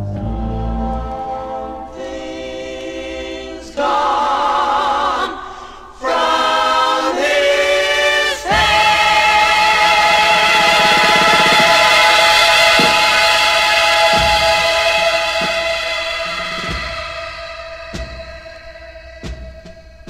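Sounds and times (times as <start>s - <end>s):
psychedelic rock with choir-like voices: 0.0s - 20.0s.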